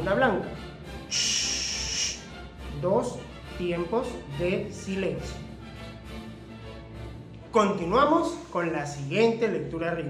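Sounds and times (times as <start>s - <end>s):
man making a long shh: 1.1s - 2.3s.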